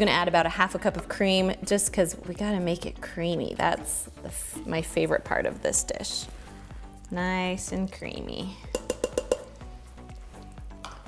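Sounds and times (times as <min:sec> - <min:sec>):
light sizzle: 0:06.2 - 0:11.0
utensil knocking on steel pot: 0:08.6 - 0:09.7.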